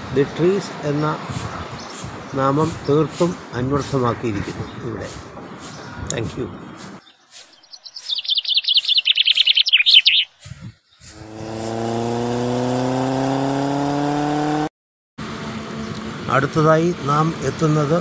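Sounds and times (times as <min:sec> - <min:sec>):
songbird trilling: 0:06.7 - 0:11.2
engine drone: 0:11.0 - 0:18.0.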